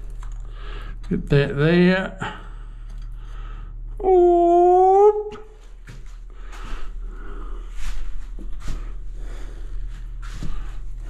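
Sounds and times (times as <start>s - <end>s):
long held vocal note: 4.0s - 5.5s.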